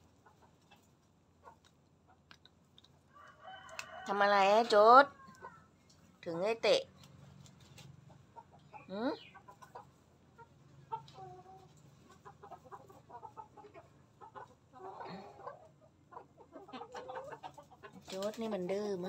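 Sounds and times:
chickens clucking quietly: 0:00.0 - 0:19.0.

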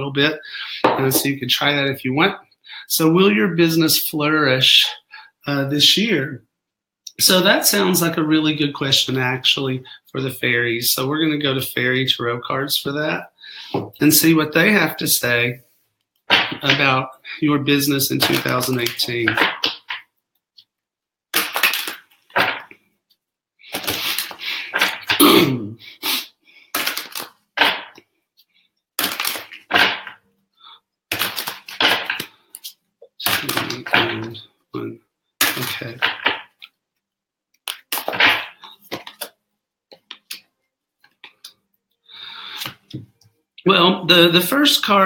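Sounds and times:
cards being shuffled: 0:17.8 - 0:20.1, 0:21.3 - 0:22.8, 0:23.7 - 0:25.2, 0:26.7 - 0:28.0, 0:29.0 - 0:30.2, 0:31.1 - 0:34.4, 0:35.4 - 0:36.6, 0:37.6 - 0:40.4, 0:42.5 - 0:43.0.

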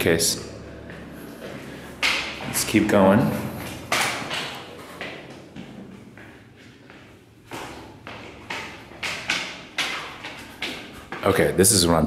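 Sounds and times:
footsteps on carpeted stairs: 0:00.6 - 0:11.9.

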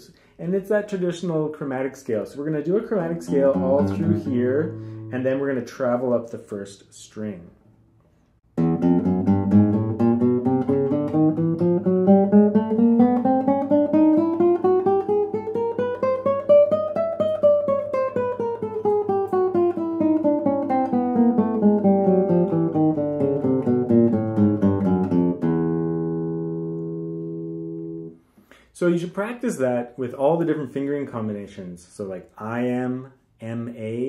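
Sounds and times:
classical guitar playing a scale: 0:03.0 - 0:05.6, 0:08.5 - 0:28.3.

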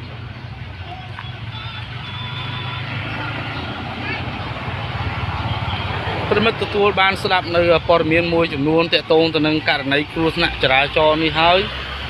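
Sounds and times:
faint voices: 0:00.0 - 0:11.8
vehicle engine rumbling: 0:00.0 - 0:12.0.

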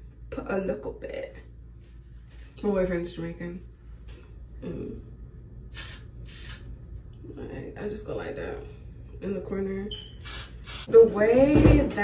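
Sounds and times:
aerosol spray can hissing: 0:05.7 - 0:06.7, 0:10.2 - 0:10.9.

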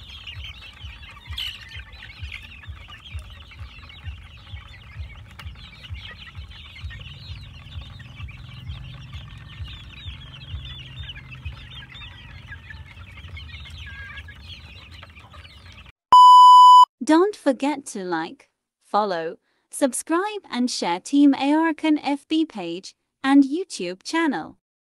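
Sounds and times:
chickens chirping and clucking: 0:00.0 - 0:15.9
electronic beep tone: 0:16.1 - 0:16.9.

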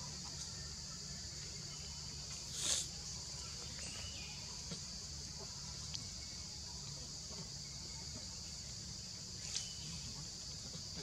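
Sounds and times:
insect chorus drone: 0:00.0 - 0:11.0.

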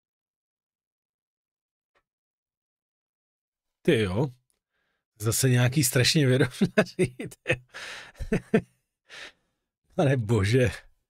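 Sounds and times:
breathy sigh: 0:07.7 - 0:08.3, 0:09.1 - 0:09.5.

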